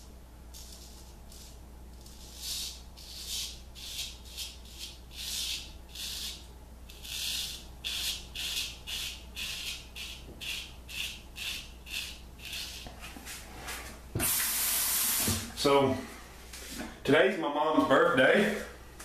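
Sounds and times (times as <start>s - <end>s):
razor scraping stubble: 0.6s - 13.4s.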